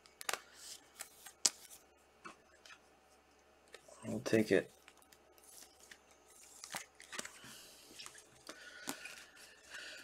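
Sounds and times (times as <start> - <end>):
plastic sleeves rustling: 2.5 - 10.0.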